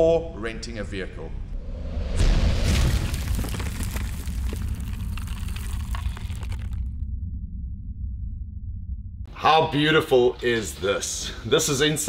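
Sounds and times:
deep rumble: 1.3s - 9.4s
crackling gritty noise: 2.6s - 7.0s.

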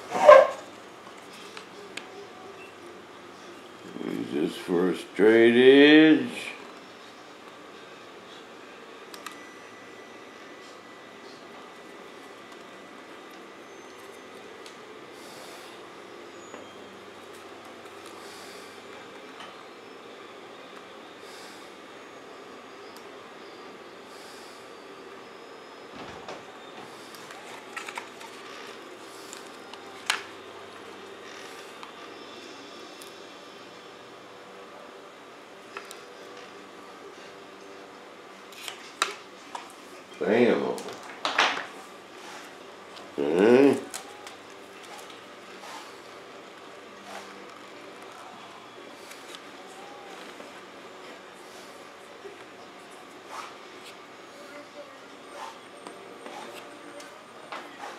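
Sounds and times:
workshop hum: 0.0s - 57.9s.

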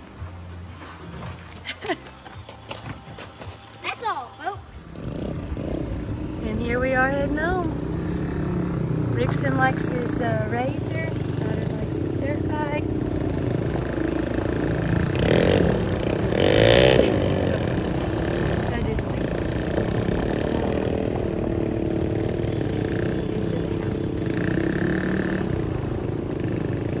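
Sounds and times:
small engines running: 5.0s - 27.0s.

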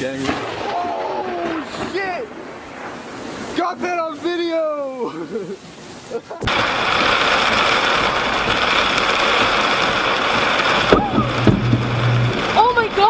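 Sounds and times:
heavy rain on a car: 3.4s - 13.0s
sharp thunder crack: 6.4s - 13.0s
low hum: 10.9s - 12.8s.

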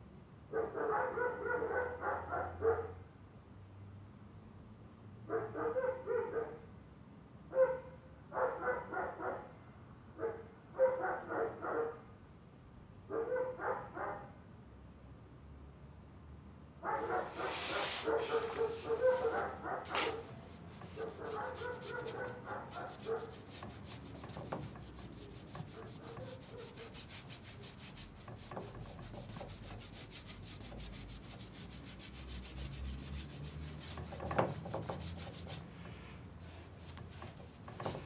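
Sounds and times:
dog barking: 0.5s - 3.0s, 5.3s - 6.6s, 7.5s - 9.5s, 10.2s - 12.0s, 13.1s - 14.4s, 16.8s - 20.3s, 21.0s - 23.4s.

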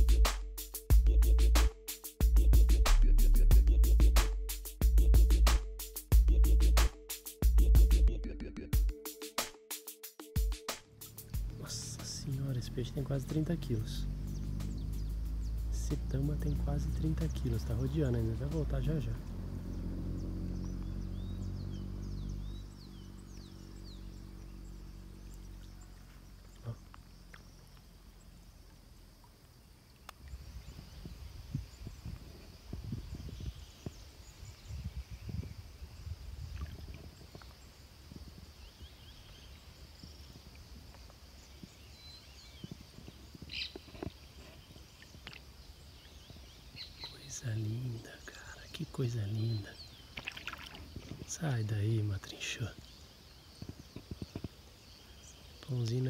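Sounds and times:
low rumbles: 11.0s - 29.2s
high bird chirps: 14.0s - 16.8s.

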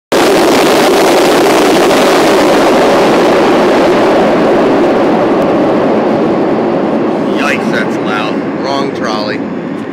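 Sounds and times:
subway train rumbling past: 1.4s - 9.9s.

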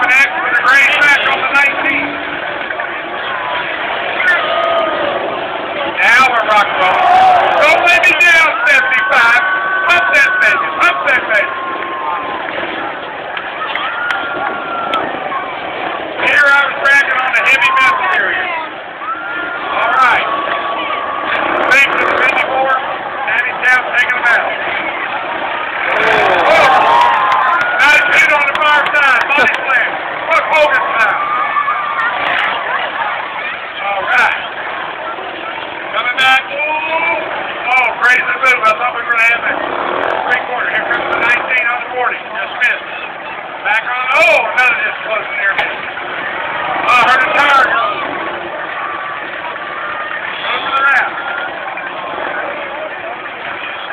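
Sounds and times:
car engines revving: 0.0s - 53.9s
crowd noise: 0.0s - 53.9s
voices: 0.0s - 53.9s.

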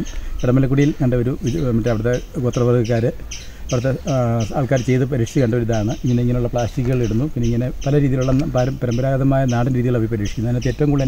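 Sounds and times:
man talking: 0.0s - 11.0s.

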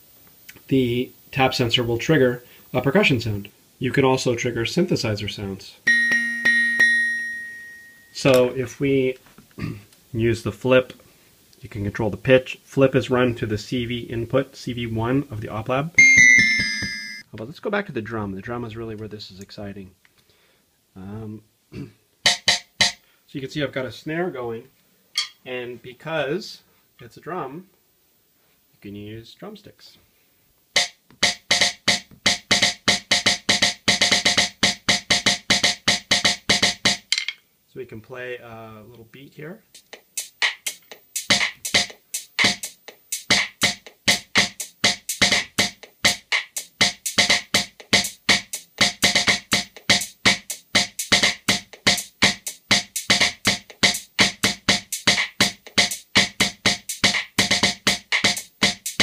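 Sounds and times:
synthesizer ringing tone: 5.9s - 8.2s, 16.0s - 17.2s
electronic snare drum hits: 16.0s - 17.2s, 22.2s - 23.0s, 30.8s - 37.1s, 39.8s - 59.0s.

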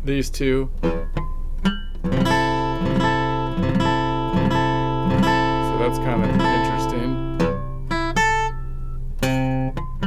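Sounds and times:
acoustic guitar chord plucked: 0.7s - 10.0s.

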